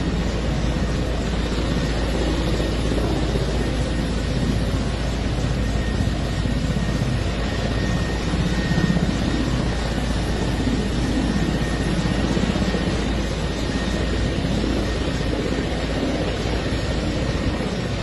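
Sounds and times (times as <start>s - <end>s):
helicopter rotor chop: 0.0s - 18.0s.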